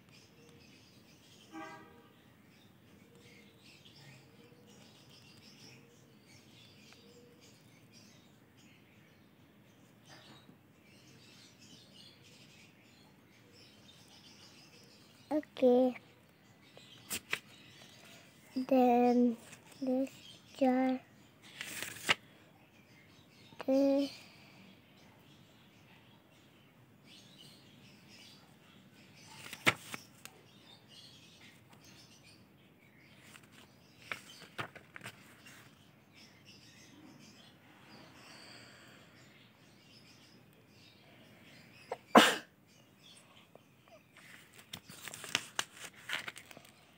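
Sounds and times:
faint bird chirping: 0:00.0 - 0:46.9
paper clicks and rustles: 0:17.1 - 0:17.5, 0:21.5 - 0:22.2, 0:29.4 - 0:30.4, 0:33.2 - 0:35.7, 0:44.2 - 0:46.8
notebook page turning: 0:17.1 - 0:17.6, 0:21.5 - 0:22.2, 0:29.4 - 0:30.3, 0:33.2 - 0:35.7, 0:44.2 - 0:46.7.

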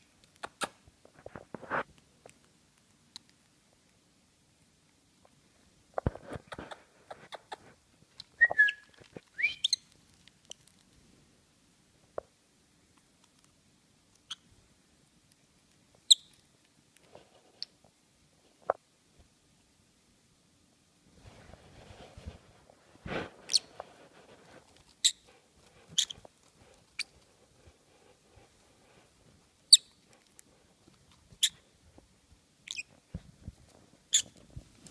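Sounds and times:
parrot whistling: 0:08.4 - 0:09.8
parrot squeaky chirps: 0:08.4 - 0:09.9, 0:16.1 - 0:16.4, 0:23.5 - 0:23.7, 0:25.0 - 0:25.3, 0:26.0 - 0:26.2, 0:29.7 - 0:30.0, 0:31.4 - 0:31.6, 0:32.6 - 0:32.9, 0:34.1 - 0:34.4.

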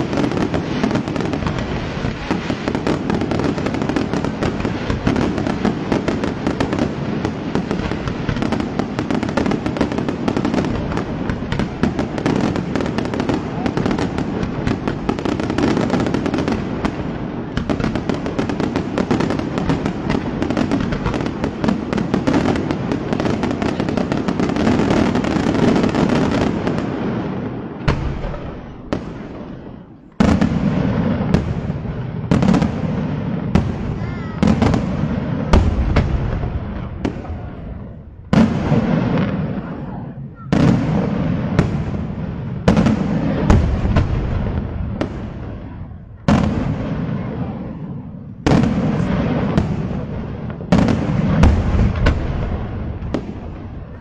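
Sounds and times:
firecracker crackle: 0:00.0 - 0:54.0
sharp firework bangs: 0:00.0 - 0:54.0.

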